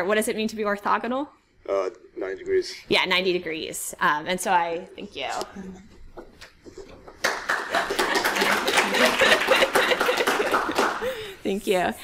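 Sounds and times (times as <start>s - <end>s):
audience clapping: 7.1s - 11.3s
laughter: 7.7s - 11.0s.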